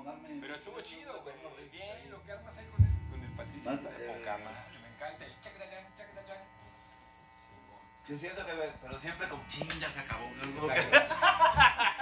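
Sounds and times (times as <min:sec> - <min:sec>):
electrical buzz from amplifier: 0:00.5 - 0:12.0.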